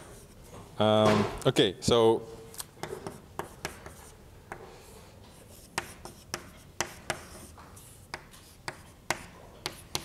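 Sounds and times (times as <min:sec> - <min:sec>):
chalk scratching: 0:00.0 - 0:00.5, 0:02.8 - 0:10.0
chalk tapping on blackboard: 0:02.8 - 0:04.7, 0:05.3 - 0:10.0.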